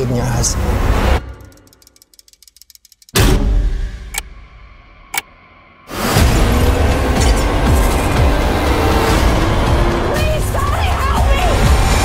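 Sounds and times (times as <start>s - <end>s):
fast ticking: 1.4s - 3.2s.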